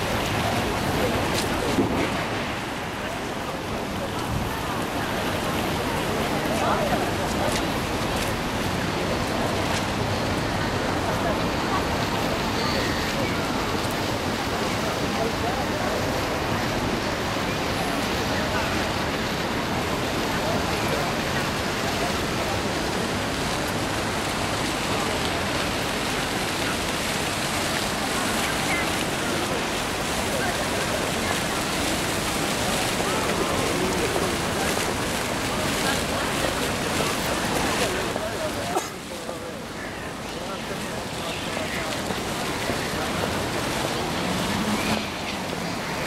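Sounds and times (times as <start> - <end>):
fountain water splashing: 0.0 - 46.0.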